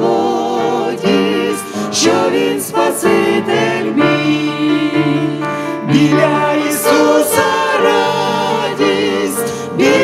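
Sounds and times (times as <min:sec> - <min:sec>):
group singing hymn in harmony: 0:00.0 - 0:10.0
piano: 0:00.0 - 0:10.0.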